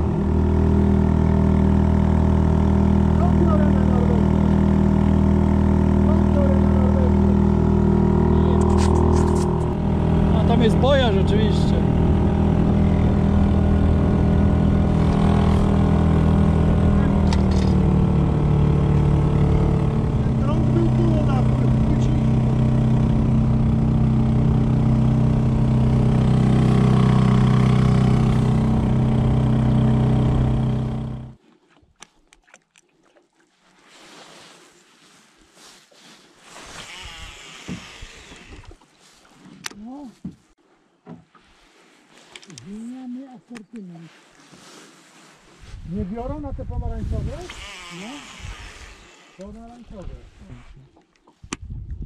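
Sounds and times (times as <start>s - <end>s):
small outboard motor running: 0.0s - 31.6s, 36.7s - 38.8s, 47.3s - 49.8s
water noise: 0.0s - 39.9s, 47.1s - 52.0s.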